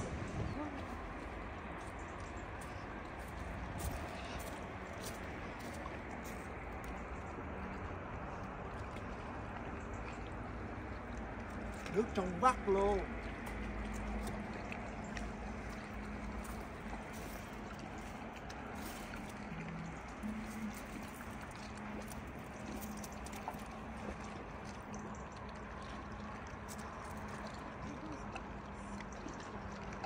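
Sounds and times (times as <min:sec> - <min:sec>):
faint hum: 0:00.0 - 0:30.0.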